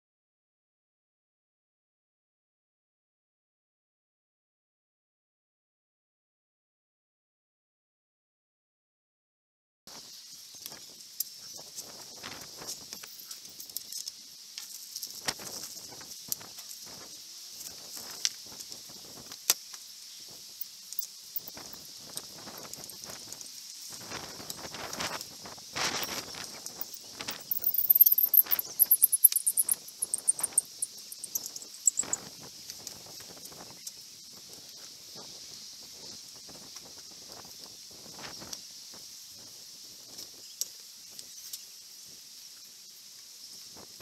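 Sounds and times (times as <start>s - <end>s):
steady high hiss: 9.9s - 44.0s
high-pitched chirps: 26.0s - 32.2s.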